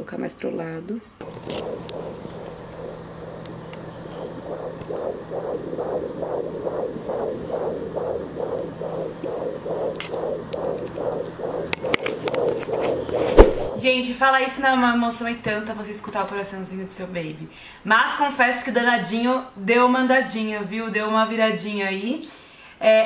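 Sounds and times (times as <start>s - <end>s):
sharp clicks: 1.2s - 13.8s
static hiss: 1.2s - 13.9s
fetal heartbeat whooshing: 1.2s - 14.3s.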